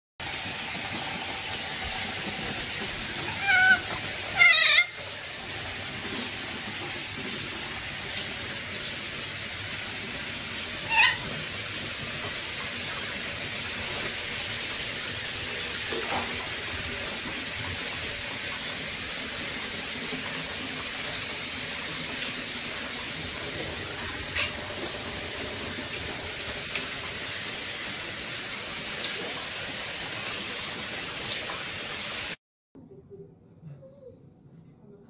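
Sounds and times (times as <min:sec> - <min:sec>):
water hissing: 0:00.2 - 0:15.1.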